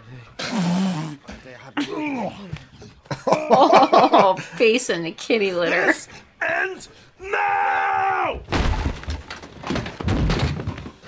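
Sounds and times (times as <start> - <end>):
bodies slamming into wall: 8.4 - 11.0.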